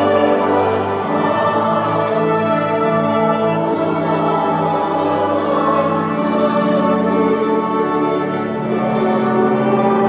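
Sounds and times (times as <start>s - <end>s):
church choir singing: 0.0s - 10.0s
organ: 0.0s - 10.0s.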